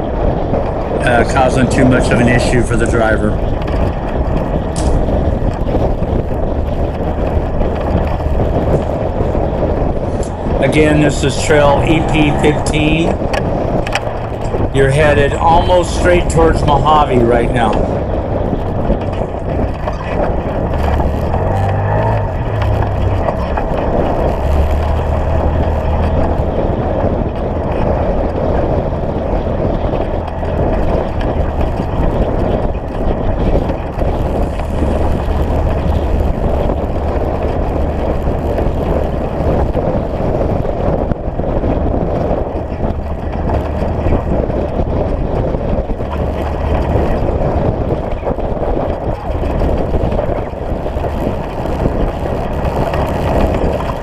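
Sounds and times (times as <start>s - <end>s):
tyres rumbling on dirt road: 0.0s - 54.0s
vehicle engine running: 0.0s - 54.0s.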